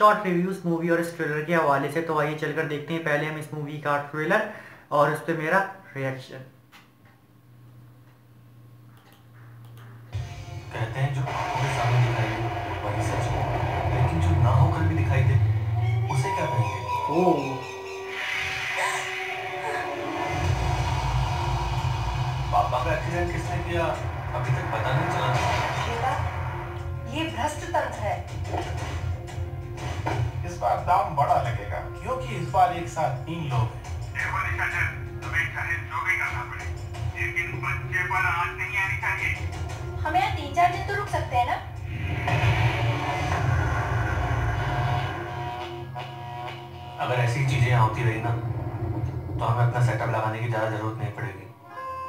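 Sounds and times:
deep rumbling drone: 11.1s - 29.8s, 41.6s - 50.9s.

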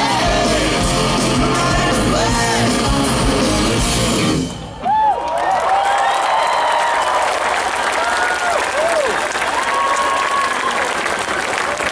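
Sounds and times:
crowd clapping and cheering: 4.6s - 11.9s
people whooping: 4.8s - 11.2s.

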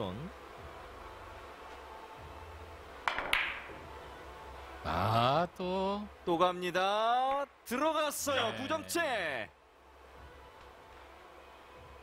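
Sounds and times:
cue tip striking billiard ball: 3.0s - 3.8s
billiard balls clicking together: 3.1s - 3.7s.

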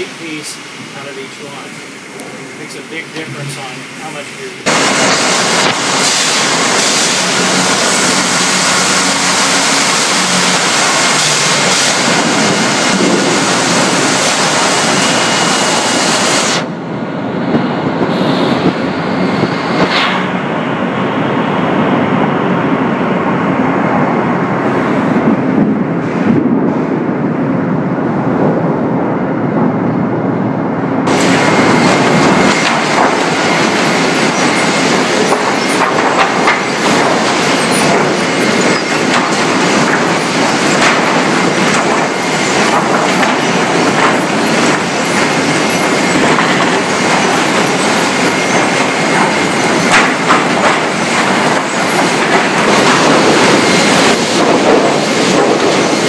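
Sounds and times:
conveyors clattering: 0.0s - 16.8s, 31.0s - 56.0s
sawmill machinery running: 0.0s - 26.5s, 31.0s - 56.0s.

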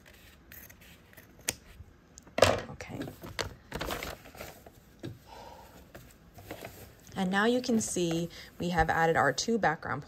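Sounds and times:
paper and fabric rustling: 3.8s - 4.9s, 5.9s - 10.0s.

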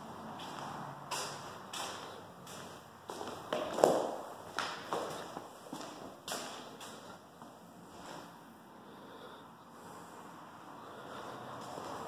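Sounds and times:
footsteps on concrete floor: 0.0s - 8.4s, 11.6s - 12.0s.

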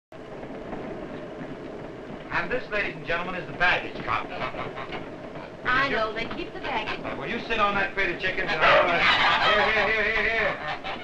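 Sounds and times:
moving train running noise: 0.2s - 11.0s.

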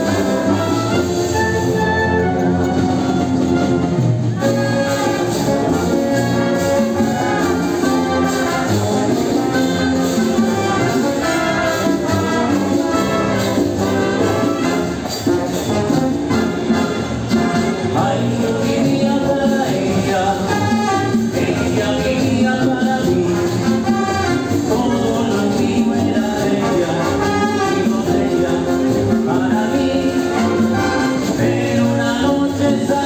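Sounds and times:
wind band playing: 0.0s - 33.0s.

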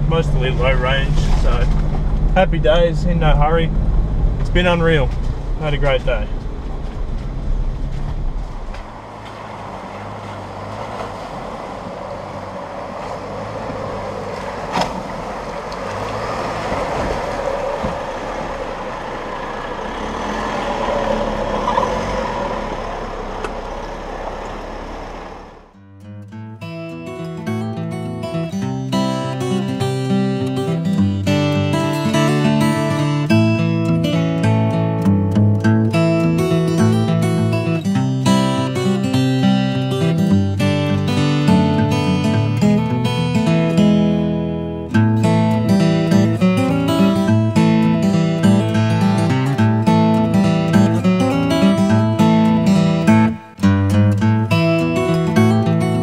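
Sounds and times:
acoustic guitar music: 0.0s - 20.6s, 25.6s - 56.0s
four-wheel drive engine: 0.0s - 25.8s, 27.0s - 56.0s
rushing river water: 8.9s - 22.6s.

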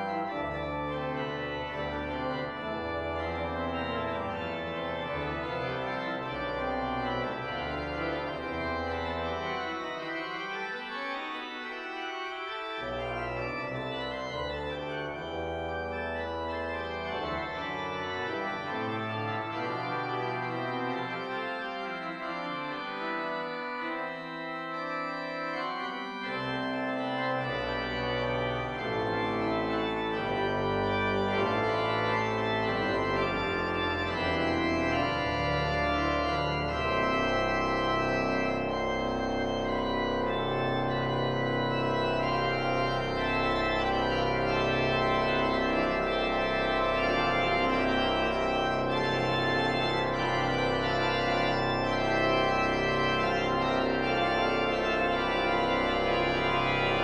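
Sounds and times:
church organ playing: 0.0s - 57.0s.

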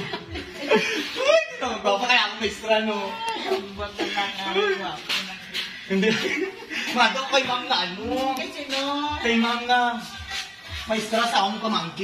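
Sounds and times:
people chuckling: 0.0s - 1.8s, 3.2s - 7.6s
man and woman chatting: 0.0s - 12.0s.

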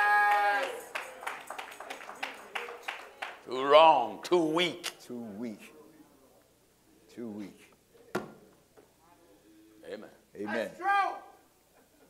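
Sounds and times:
hand claps: 0.3s - 3.5s.

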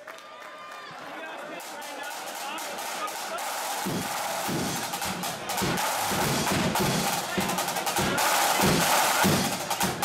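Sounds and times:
crowd noise in a hall: 0.0s - 10.0s
bass drum beating: 3.8s - 10.0s.

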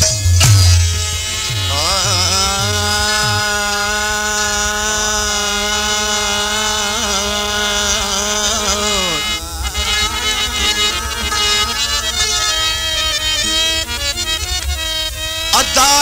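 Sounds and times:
long held wavering note: 8.1s - 14.3s.

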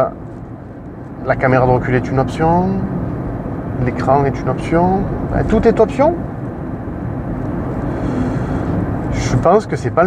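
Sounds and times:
road and tyre noise in car cabin: 0.0s - 10.0s.

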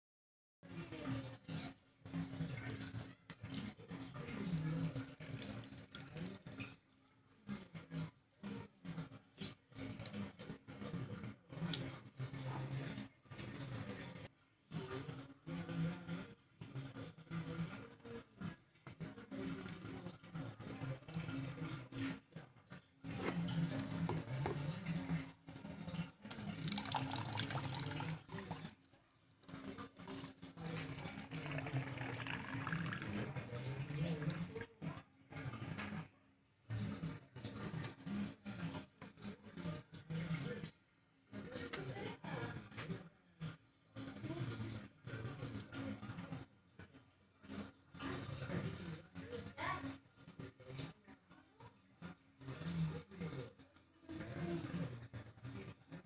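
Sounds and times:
water trickling: 2.3s - 7.0s, 22.6s - 34.9s
water splashing in plastic bucket: 23.0s - 28.7s, 29.6s - 34.8s.

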